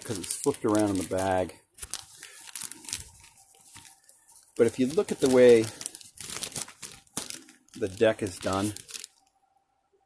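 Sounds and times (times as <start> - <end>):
plastic bag crinkling: 0.0 - 9.4.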